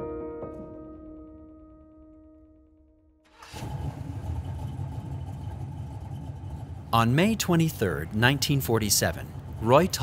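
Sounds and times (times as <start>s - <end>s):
car engines idling: 3.3s - 10.0s.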